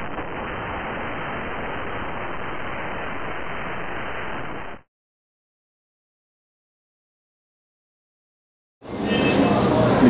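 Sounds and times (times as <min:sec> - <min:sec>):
white noise hiss: 0:00.0 - 0:04.8.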